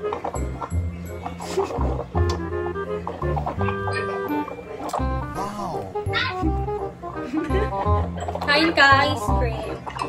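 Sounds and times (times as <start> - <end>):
music with pulsing bass line: 0.4 - 9.9.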